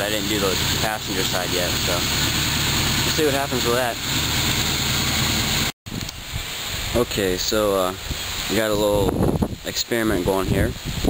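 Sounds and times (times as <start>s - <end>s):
car engine idling: 0.0s - 5.7s.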